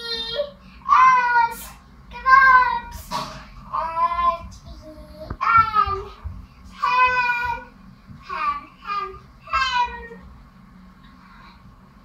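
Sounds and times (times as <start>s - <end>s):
child chanting sing-song: 0.0s - 3.1s, 3.7s - 10.3s.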